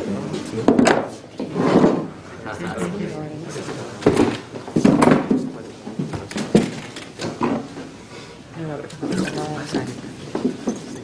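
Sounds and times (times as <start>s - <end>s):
voices talking and calling out: 2.1s - 4.6s, 8.5s - 10.3s
sharp knocks: 4.0s - 7.7s.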